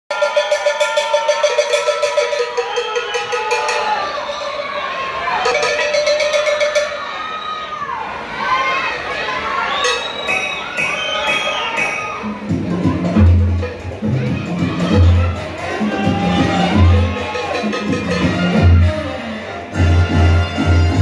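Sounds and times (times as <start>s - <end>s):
cowbell strokes: 0.1s - 7.4s, 9.8s - 19.2s
audience shouting and cheering: 0.1s - 21.0s
salsa music: 9.8s - 21.0s.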